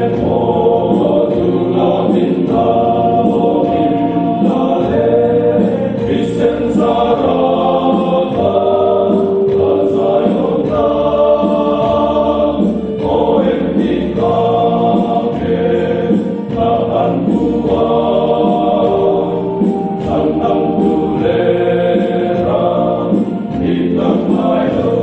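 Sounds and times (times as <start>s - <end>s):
men singing in parts: 0.0s - 25.0s.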